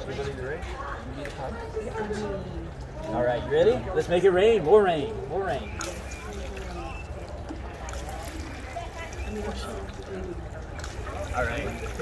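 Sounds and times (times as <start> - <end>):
faint children's voices: 5.6 - 12.0
water spraying and splashing: 5.6 - 12.0.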